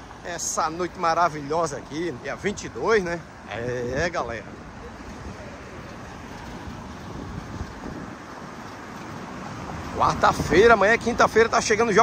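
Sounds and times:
road traffic hum: 0.0s - 12.0s
wind on microphone: 3.6s - 11.1s.

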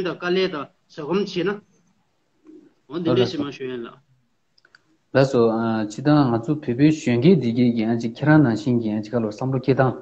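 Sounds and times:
man speaking: 2.9s - 4.1s, 5.1s - 10.0s
faint clicks: 4.5s - 4.9s.

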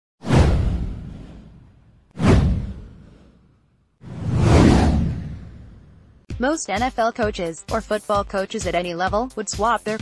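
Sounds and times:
deep boom: 0.2s - 3.3s, 4.0s - 6.2s
whoosh sound effect: 0.2s - 6.2s.

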